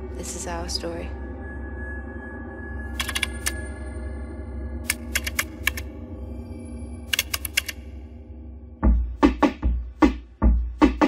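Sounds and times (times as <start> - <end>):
low steady drone: 0.0 - 9.1
keyboard typing: 3.0 - 3.6, 4.9 - 5.9, 7.1 - 7.8.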